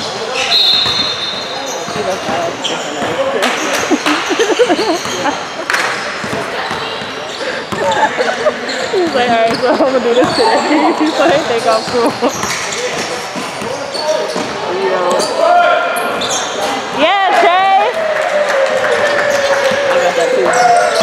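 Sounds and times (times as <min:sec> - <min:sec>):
voices in echoing hall: 0:00.0 - 0:21.0
basketball dribbling: 0:06.2 - 0:07.1, 0:08.8 - 0:15.2.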